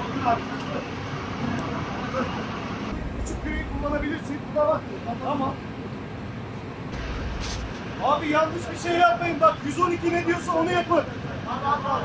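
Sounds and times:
low engine rumble: 2.9s - 4.7s.

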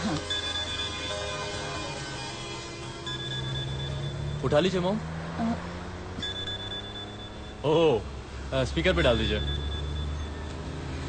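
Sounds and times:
low held drone: 0.0s - 4.8s
mobile phone ringing: 0.0s - 4.8s, 5.4s - 8.0s, 8.9s - 10.9s.

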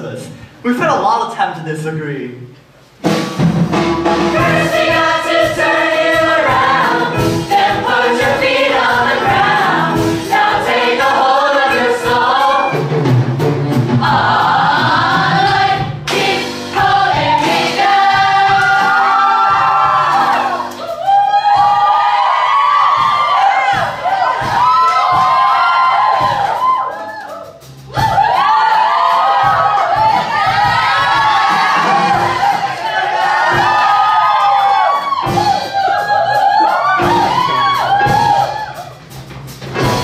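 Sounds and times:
musical accompaniment with beat: 2.6s - 40.0s.

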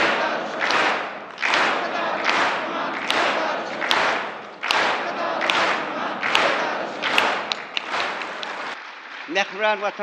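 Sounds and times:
audience applause: 0.0s - 10.0s.

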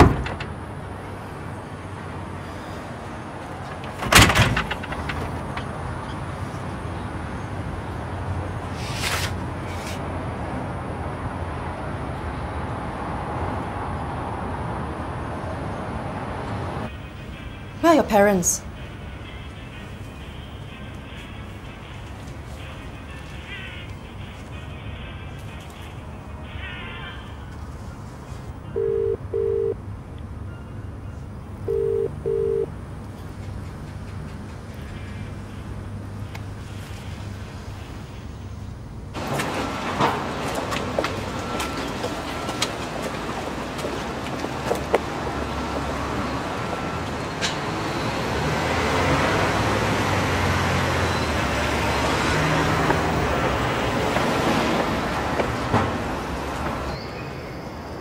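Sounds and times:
road traffic rumble: 0.0s - 58.0s
telephone ringback tone: 28.7s - 29.8s, 31.7s - 32.7s.

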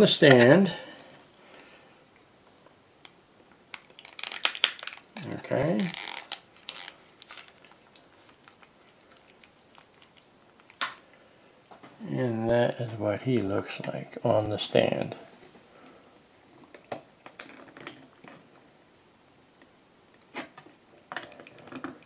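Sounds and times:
crinkling and rustling: 3.7s - 11.0s, 20.2s - 22.0s.

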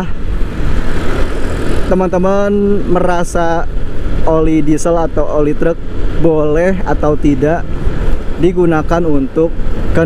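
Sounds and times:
road noise: 0.0s - 10.0s
wind rumble on microphone: 0.0s - 10.0s
scooter engine: 0.1s - 2.9s.

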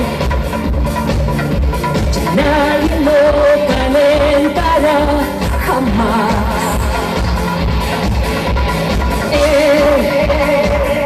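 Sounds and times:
live pop band playing: 0.0s - 11.0s
woman singing: 2.2s - 7.3s, 9.3s - 11.0s.

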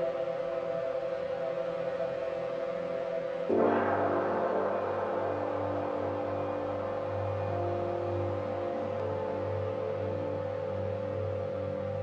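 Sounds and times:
droning synth tones: 0.0s - 12.0s.

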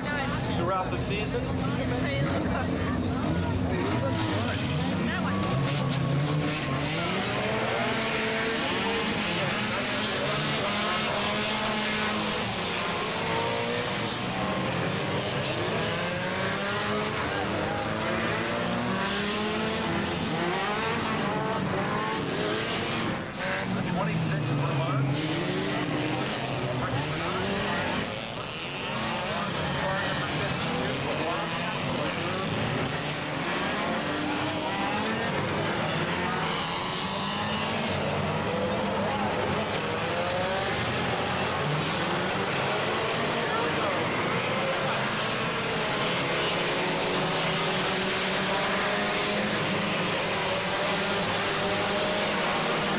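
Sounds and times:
race car engines revving: 0.0s - 52.9s.

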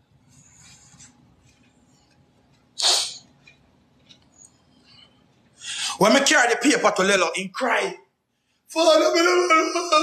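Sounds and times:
handling noise on phone microphone: 0.0s - 4.4s
short hissing: 2.8s - 3.3s.

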